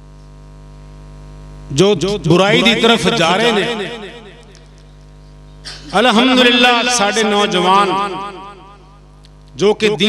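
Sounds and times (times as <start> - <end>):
electrical mains hum: 0.0 - 10.0
man's amplified voice: 1.7 - 4.6, 5.8 - 10.0.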